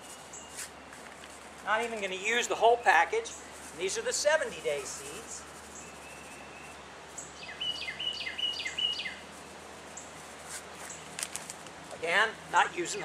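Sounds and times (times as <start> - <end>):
songbird singing: 0.0 - 13.0.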